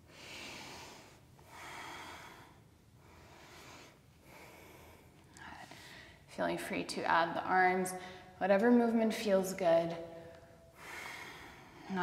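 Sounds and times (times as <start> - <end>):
woman breathing slowly: 0.0 - 6.3, 7.9 - 8.4, 10.0 - 12.0.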